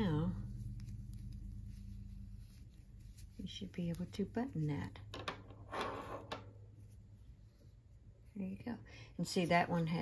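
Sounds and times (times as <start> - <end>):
fabric rustle: 0.0 - 5.1, 6.0 - 10.0
faint room hum: 0.0 - 10.0.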